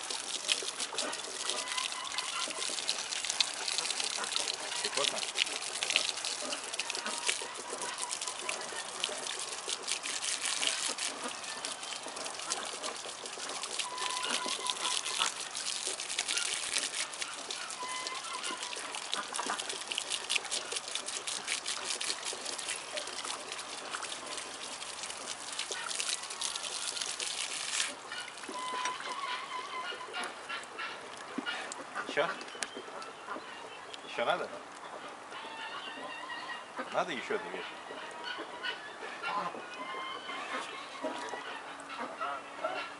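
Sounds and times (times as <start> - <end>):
water spraying from hose: 0.0 - 31.3.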